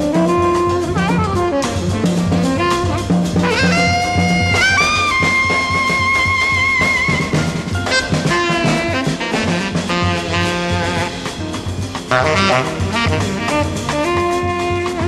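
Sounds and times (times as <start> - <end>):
drums and cymbals: 0.0 - 15.0
tenor saxophone: 0.0 - 15.0
walking double bass: 0.0 - 15.0.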